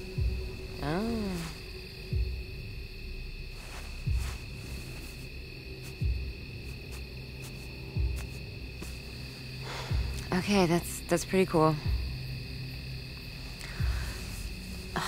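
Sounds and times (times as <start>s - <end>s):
low booming pulse: 1.9s - 6.6s.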